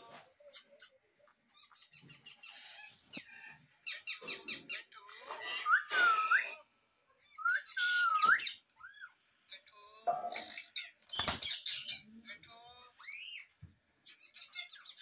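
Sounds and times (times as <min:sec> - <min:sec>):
parrot whistles and chirps: 0:05.4 - 0:06.6, 0:07.2 - 0:09.1.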